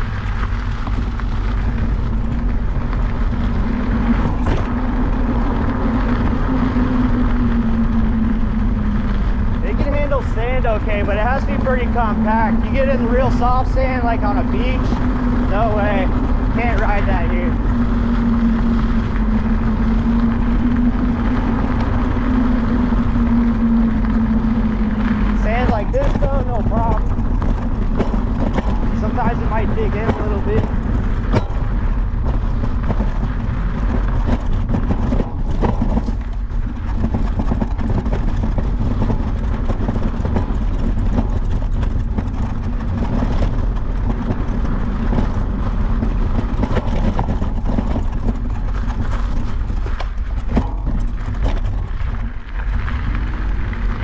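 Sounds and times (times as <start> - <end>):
electric motor hum: 0.0 - 54.0
tyre rumble: 0.0 - 54.0
wind buffeting microphone: 0.0 - 54.0.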